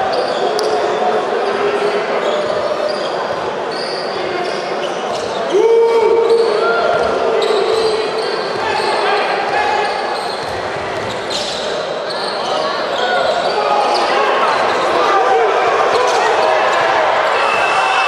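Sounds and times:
voices echoing in sports hall: 0.0s - 18.0s
shoes squeaking: 1.8s - 15.0s.

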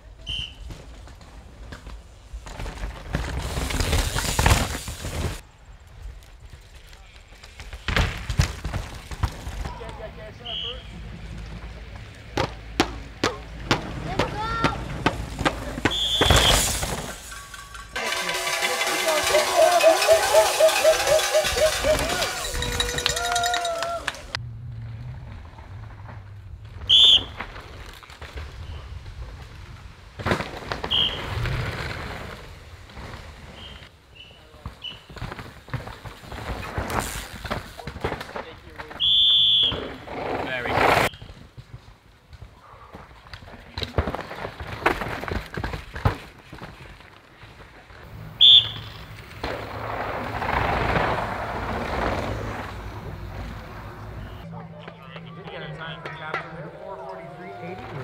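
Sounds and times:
shrill whistle blasts: 0.2s - 0.6s, 10.4s - 10.9s, 15.8s - 17.1s, 26.9s - 27.4s, 30.8s - 31.3s, 39.0s - 40.0s, 48.4s - 49.1s
bike tyres skidding on dirt: 0.2s - 12.6s, 13.5s - 54.5s
bike rattling over bumps: 0.6s - 58.0s
spectators shouting: 18.0s - 24.4s, 54.1s - 58.0s.

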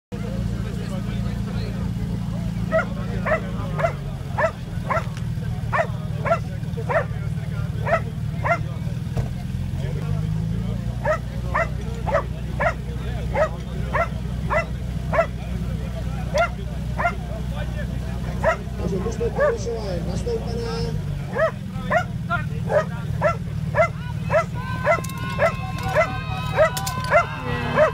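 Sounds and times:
dog barking: 2.7s - 5.1s, 5.7s - 7.1s, 7.8s - 8.7s, 11.0s - 15.4s, 16.3s - 17.2s, 18.4s - 18.7s, 19.4s - 19.7s, 21.3s - 27.9s.

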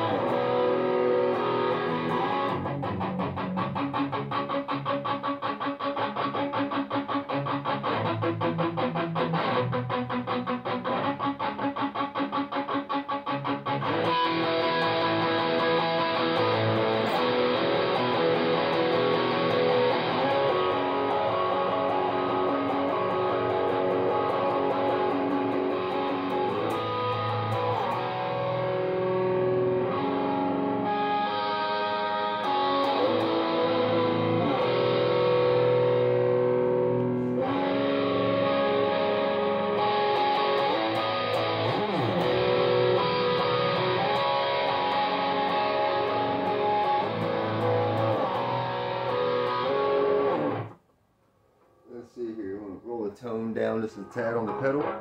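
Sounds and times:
distorted electric guitar riffing: 0.0s - 50.8s, 53.3s - 55.0s.

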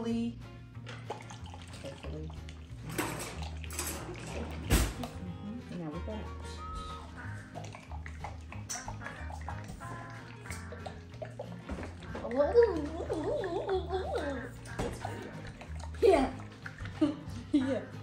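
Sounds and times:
liquid sloshing in a shaken jar: 0.9s - 5.9s, 7.0s - 17.4s
background music with bass line: 3.6s - 18.0s.

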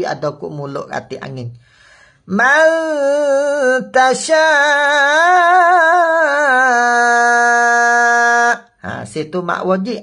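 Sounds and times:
man chanting a long vowel: 2.2s - 10.0s.

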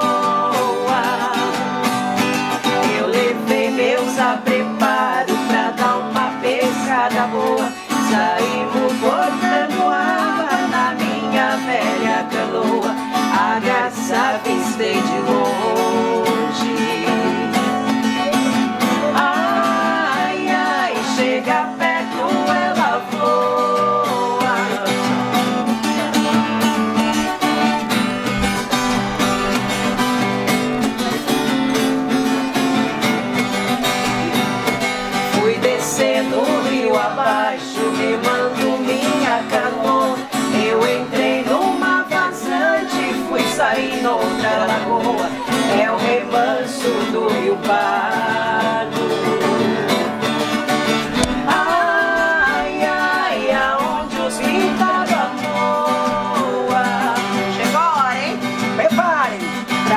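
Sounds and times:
woman singing: 0.0s - 58.1s
acoustic guitars strumming: 0.0s - 59.9s.

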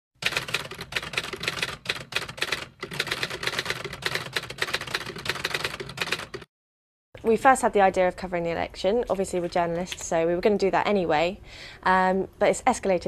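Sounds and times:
typewriter keys clicking: 0.2s - 6.5s.

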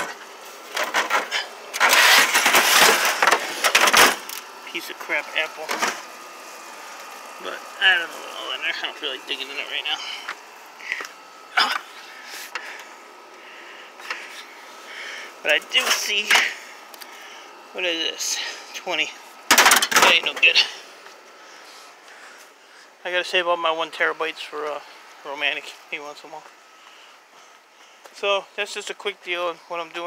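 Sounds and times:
metal computer cases scraping: 0.0s - 4.3s.

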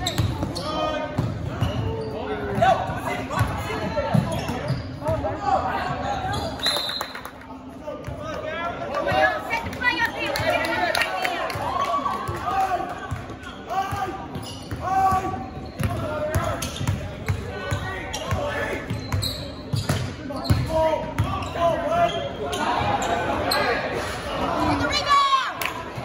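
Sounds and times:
people shouting and calling: 20.8s - 26.0s.

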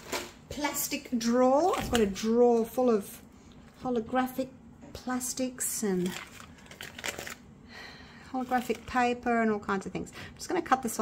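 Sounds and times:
plastic film crinkling: 6.0s - 7.5s, 8.4s - 9.2s.

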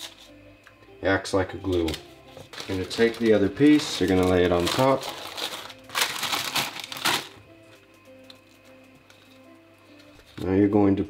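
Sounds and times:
soft background music: 0.0s - 11.0s
wax paper rustling: 1.6s - 7.4s.

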